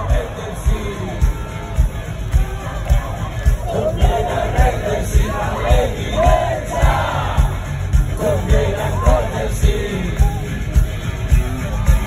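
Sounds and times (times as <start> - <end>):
crowd singing along: 0.0 - 12.0
live rock band: 0.0 - 12.0.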